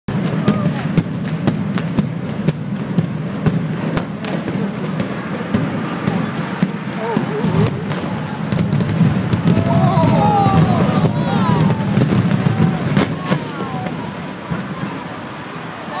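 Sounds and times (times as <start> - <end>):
spectators calling and whooping: 0.1 - 1.2, 4.2 - 16.0.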